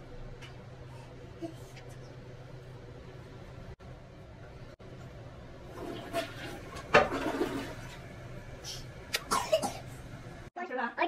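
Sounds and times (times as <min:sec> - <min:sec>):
toilet water rushing: 0:05.6 - 0:08.1.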